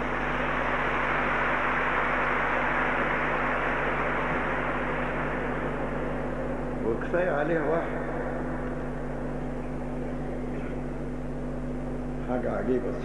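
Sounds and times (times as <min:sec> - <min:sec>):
audience clapping: 0:00.0 - 0:06.3.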